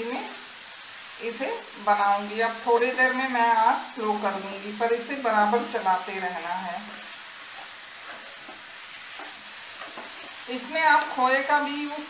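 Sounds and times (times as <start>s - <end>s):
coconut sizzling in a pan: 0.0s - 12.0s
spatula scraping a pan: 6.8s - 11.1s.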